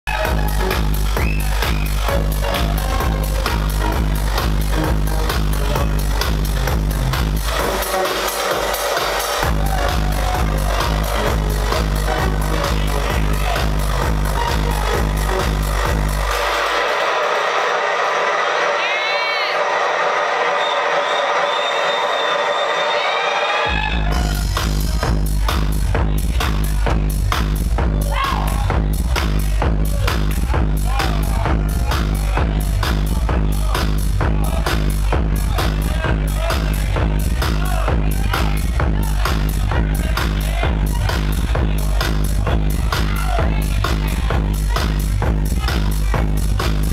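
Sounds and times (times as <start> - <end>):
electronic dance music: 0.0 - 46.9.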